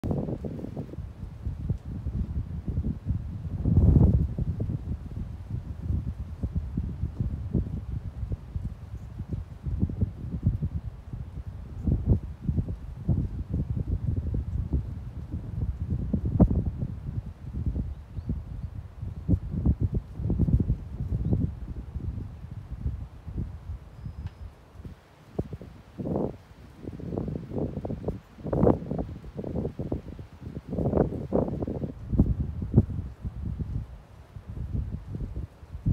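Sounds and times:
wind buffeting microphone: 0:00.0 - 0:35.9.

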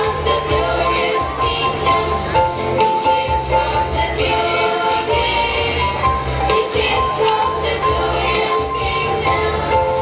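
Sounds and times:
bass line: 0:00.0 - 0:10.0
choir singing a carol: 0:00.0 - 0:10.0.

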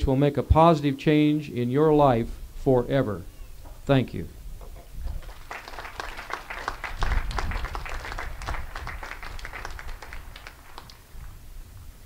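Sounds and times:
audience applauding: 0:05.0 - 0:11.1.

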